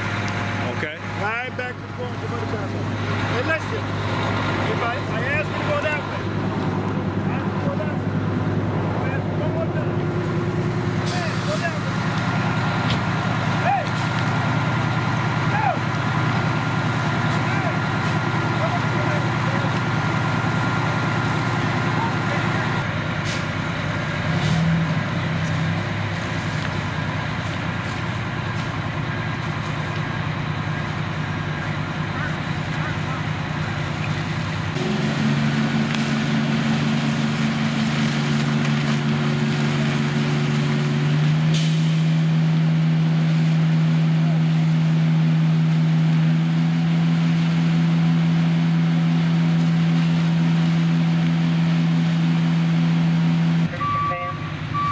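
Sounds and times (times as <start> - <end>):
diesel engines droning: 0.0 - 54.9.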